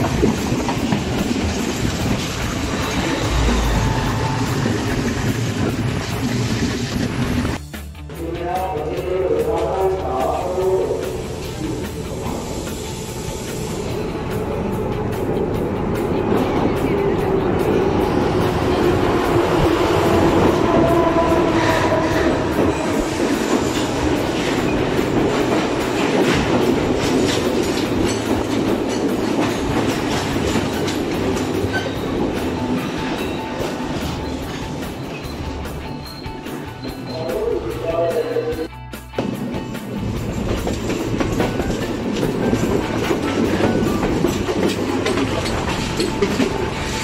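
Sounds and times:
wheels clattering over rail joints: 0.0s - 7.6s, 15.5s - 37.2s, 39.8s - 47.0s
train running past: 0.0s - 47.0s.

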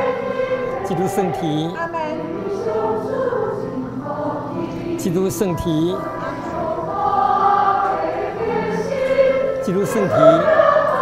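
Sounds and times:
choir singing a slow hymn: 0.0s - 11.0s.

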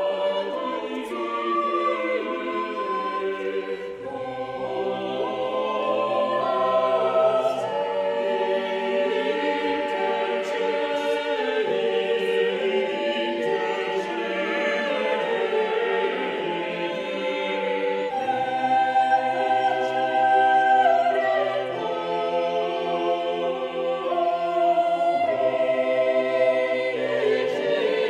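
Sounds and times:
choir singing held chords: 0.0s - 28.0s.

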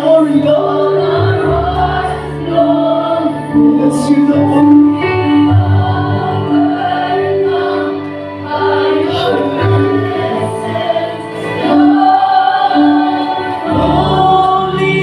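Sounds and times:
keyboard: 0.0s - 15.0s
voices singing in unison: 0.0s - 15.0s.

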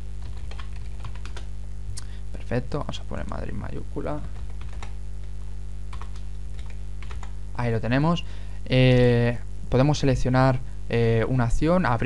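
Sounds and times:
steady low hum: 0.0s - 12.0s
computer keyboard keystrokes: 0.2s - 1.5s, 5.9s - 7.3s.

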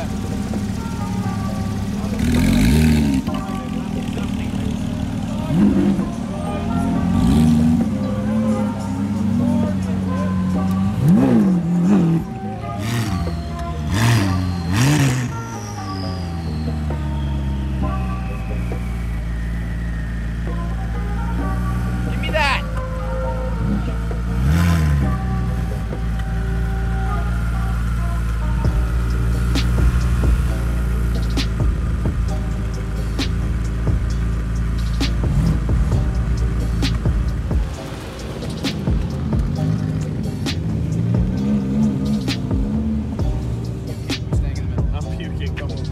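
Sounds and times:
background music: 0.0s - 45.9s
car engines revving: 0.0s - 45.9s.

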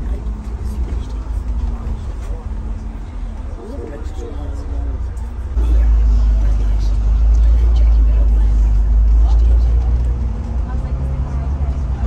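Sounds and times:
bus engine rumble and road noise: 0.0s - 12.0s.

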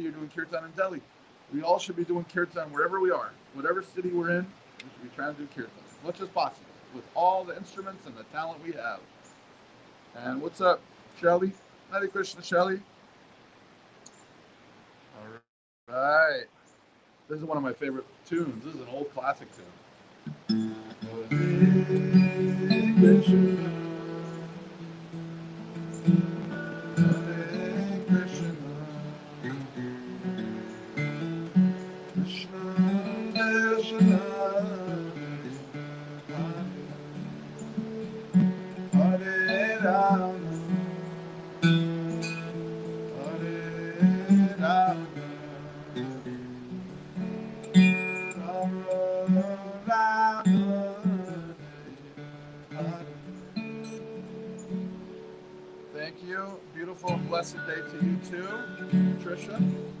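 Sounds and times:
acoustic guitar slow tune: 20.1s - 60.0s.

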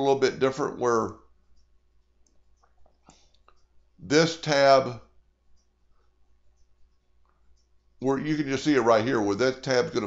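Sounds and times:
man speaking: 0.0s - 1.3s, 4.0s - 5.2s, 8.0s - 10.0s.

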